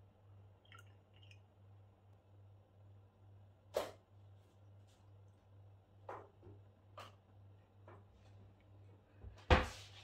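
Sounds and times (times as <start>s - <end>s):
liquid pouring into bottle: 0.6s - 1.5s.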